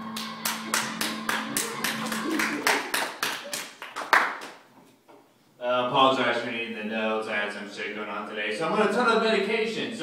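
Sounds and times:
rhythmic hand clapping: 0.0s - 4.6s.

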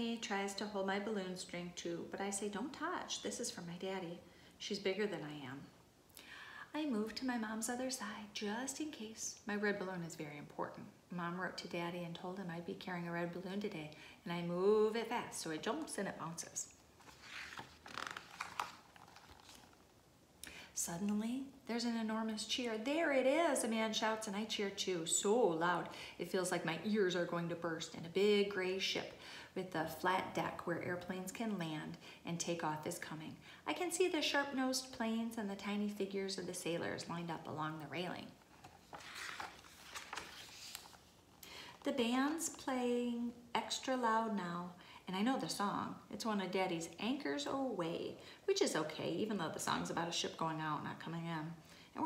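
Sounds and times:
book page turning: 17.0s - 19.9s, 38.4s - 41.4s.

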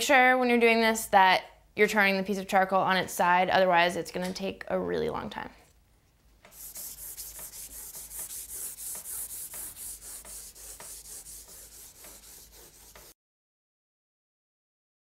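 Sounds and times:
charcoal rubbing on paper: 6.5s - 13.2s.

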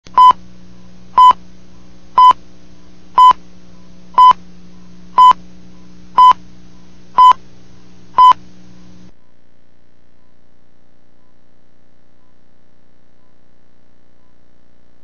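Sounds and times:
steady low hum: 0.1s - 14.5s
countdown test-tone beeps: 7.2s - 7.4s.

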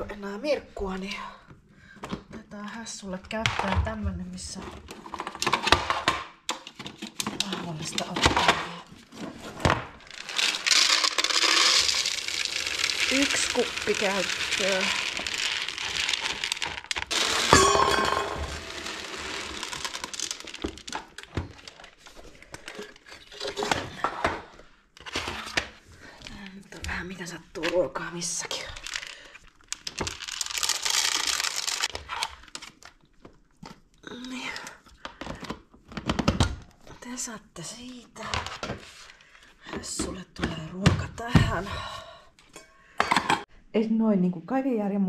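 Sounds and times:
cat kibble rattling in plastic hopper: 10.0s - 17.6s, 18.2s - 21.9s, 29.7s - 31.9s.

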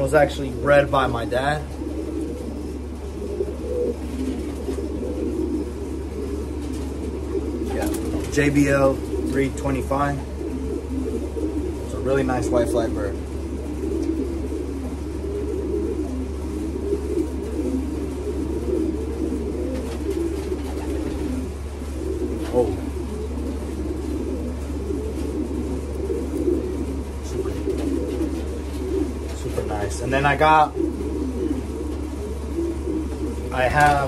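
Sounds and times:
pigeons cooing: 0.0s - 34.0s.

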